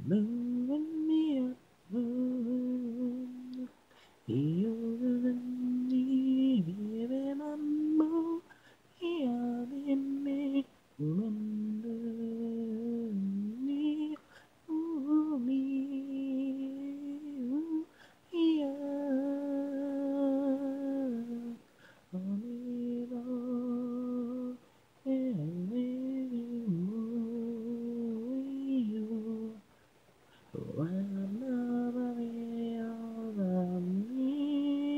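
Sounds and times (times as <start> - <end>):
person singing unaccompanied: 0.0 - 29.7, 30.3 - 34.9.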